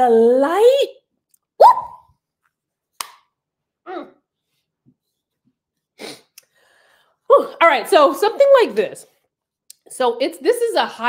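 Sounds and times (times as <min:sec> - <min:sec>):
woman whooping: 0:01.6 - 0:02.1.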